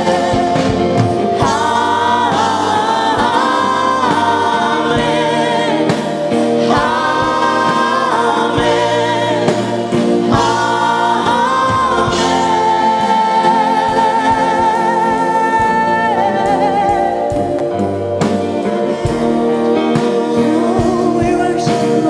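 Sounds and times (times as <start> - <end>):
band accompaniment: 0.0 - 22.0
singers singing together: 0.0 - 22.0.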